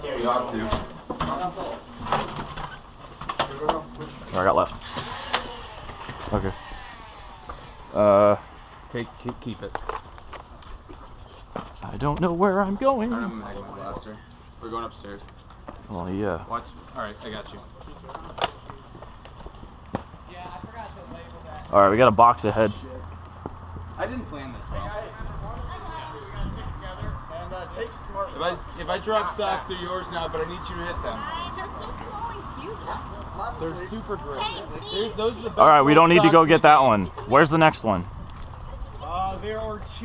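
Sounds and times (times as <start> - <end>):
indistinct voices talking: 3.4 - 40.0
low rumble: 6.7 - 10.2
footsteps on concrete stairs: 8.5 - 12.4, 16.8 - 21.8, 23.1 - 24.0.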